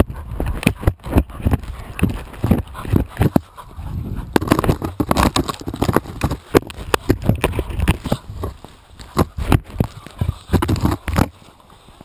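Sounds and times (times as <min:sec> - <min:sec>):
handling noise rumbling: 0:00.5 - 0:11.4.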